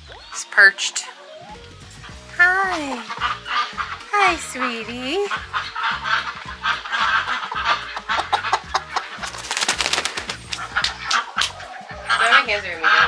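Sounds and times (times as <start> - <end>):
hens clucking: 0.0 - 13.0
light background music: 0.0 - 13.0.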